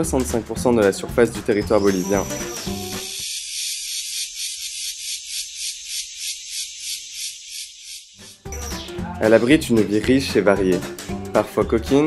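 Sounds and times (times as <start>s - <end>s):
cicadas buzzing: 1.6s - 9.2s.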